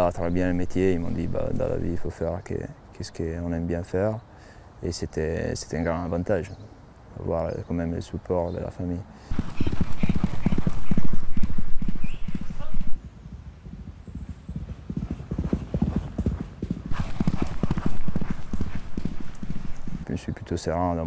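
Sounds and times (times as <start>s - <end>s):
galloping horse hoofbeats: 9.3s - 20.1s.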